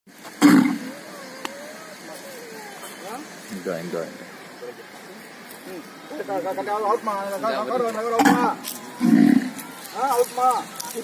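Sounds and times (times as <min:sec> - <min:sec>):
bull grunting: 0:09.0 - 0:09.6.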